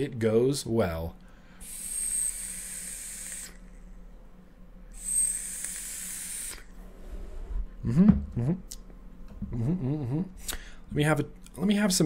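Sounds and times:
thin high whistle: 1.6 - 3.7, 5.0 - 6.7
hissing vape pulls: 1.6 - 3.8, 4.9 - 6.8.

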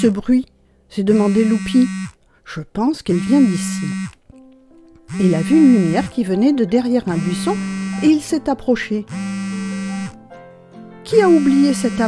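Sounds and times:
soft background music: 0.0 - 12.0
cartoon phone ringing buzz: 1.1 - 2.2, 3.1 - 4.2, 5.1 - 6.2, 7.1 - 8.3, 9.1 - 10.2, 11.1 - 12.0.

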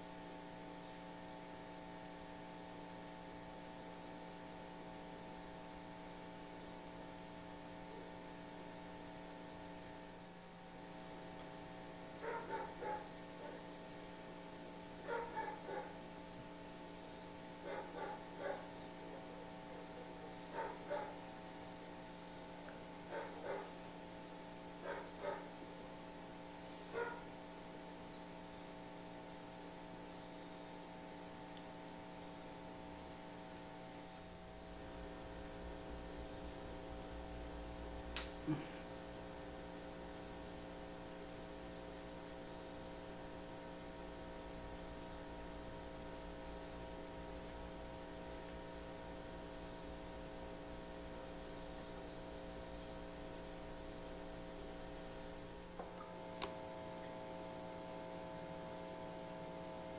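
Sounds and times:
steady electrical hum: 0.0 - 59.9.

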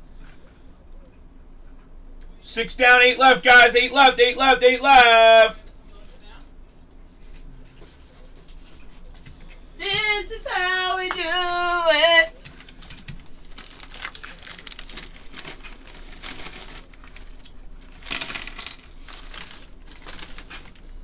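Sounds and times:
raised drawn-out voice: 2.4 - 5.6, 9.8 - 12.3
crinkling and rustling handling noise: 2.9 - 21.0.

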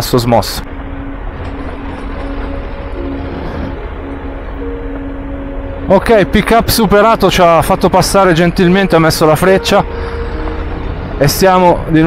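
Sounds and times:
wind noise: 0.0 - 12.0.

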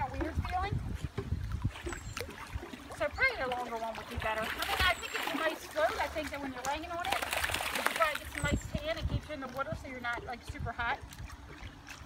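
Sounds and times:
pool water sloshing: 0.0 - 12.0.

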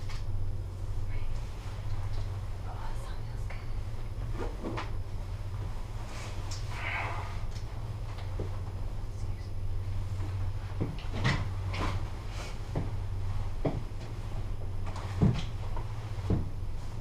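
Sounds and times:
gondola cabin low hum: 0.0 - 17.0
cabin knocks and creaks: 10.2 - 16.7.

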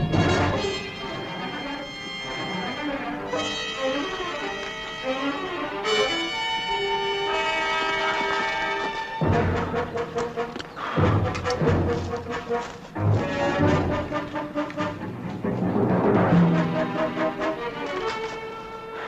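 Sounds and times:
low pounding beats: 0.0 - 2.6, 8.0 - 17.8
held brass chords: 0.0 - 19.0
orchestral dramatic music: 0.0 - 19.0.

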